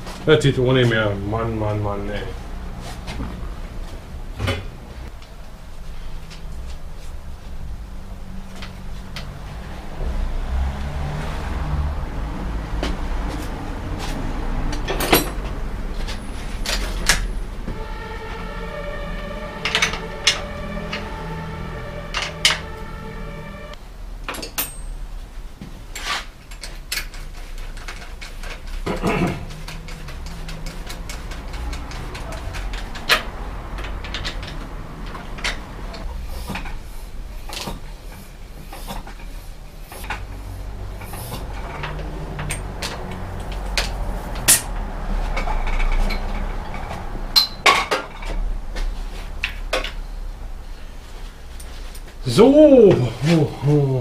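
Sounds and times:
tools clicking and knocking: 26.5 - 35.6.

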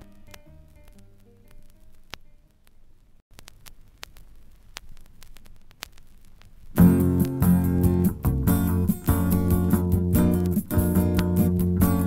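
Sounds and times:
vinyl clicks and pops: 0.0 - 12.0.

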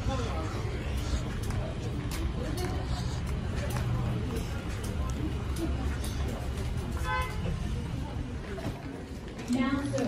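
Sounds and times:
faint murmur: 0.0 - 10.0.

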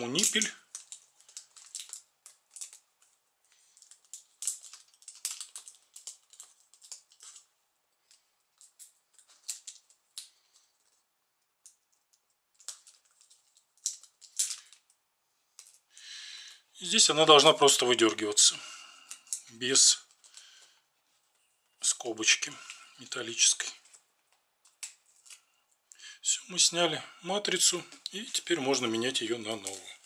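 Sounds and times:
adhesive tape crackling: 0.0 - 15.9, 23.8 - 26.0.

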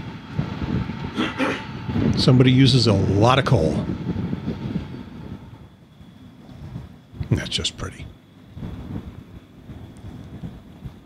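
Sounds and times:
low rumbling outdoor noise: 0.0 - 11.0.

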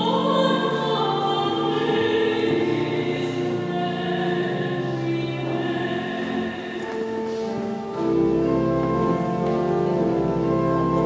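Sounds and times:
choir singing sustained chords: 0.0 - 7.3.

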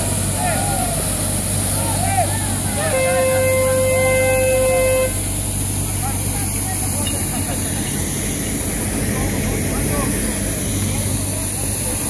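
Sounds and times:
street sweeper engine hum: 0.0 - 12.0
horn long note: 2.7 - 5.3.

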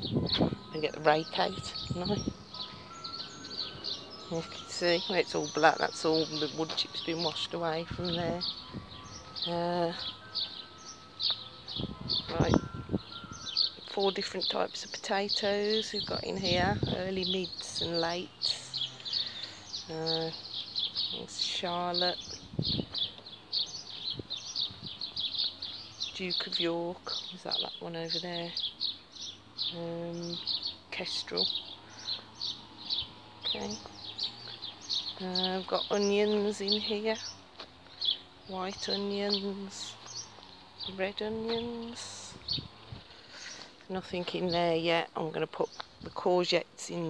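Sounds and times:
dull low thuds: 0.0 - 0.7, 21.8 - 25.6
faint outdoor noise: 0.0 - 47.0
small birds chirping: 0.0 - 47.0.

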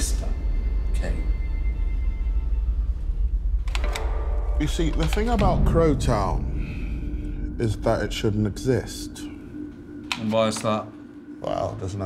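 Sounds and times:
low steady rumble: 1.4 - 10.0.

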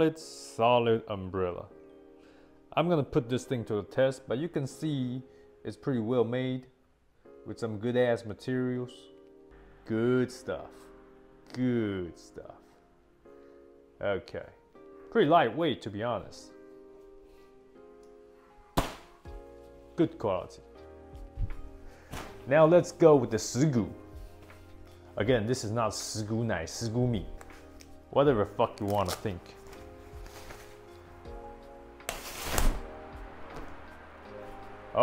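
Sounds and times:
background music: 0.0 - 35.0
umbrella being opened: 27.3 - 31.0, 32.0 - 33.8
umbrella mechanism snapping shut: 32.0 - 32.9.

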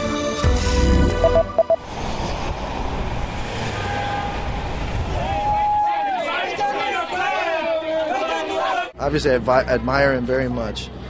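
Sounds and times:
cars passing: 1.6 - 7.6.

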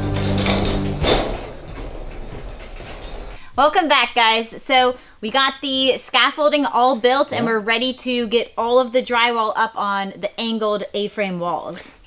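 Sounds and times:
background music: 0.0 - 2.6
metal frame rattling: 0.0 - 4.9
scaffold tower rolling on casters: 0.0 - 4.9.

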